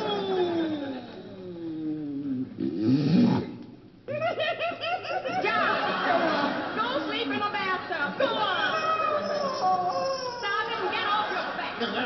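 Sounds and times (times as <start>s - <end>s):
whistling tone sliding downward: 0.0s - 1.7s
comic snore: 1.4s - 3.6s.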